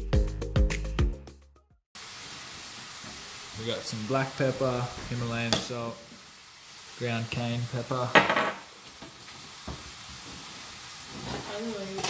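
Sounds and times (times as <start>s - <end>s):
chicken sizzling in a pan: 2.0s - 12.0s.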